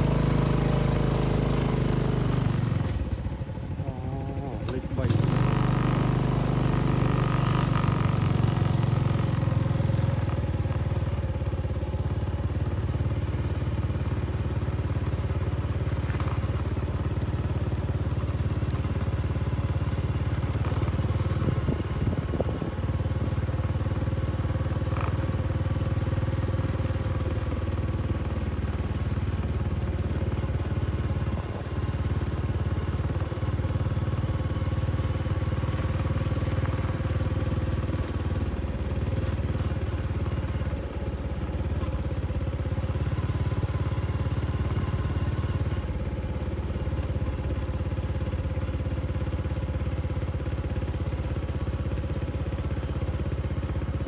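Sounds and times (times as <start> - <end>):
diesel engine droning: 0.0 - 54.0.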